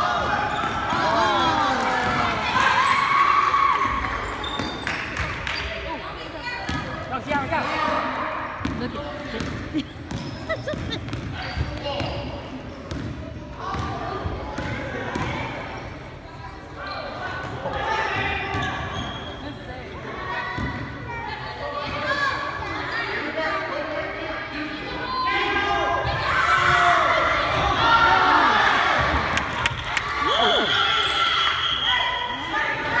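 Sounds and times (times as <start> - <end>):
spectators shouting and cheering: 0.0 - 5.4, 24.9 - 33.0.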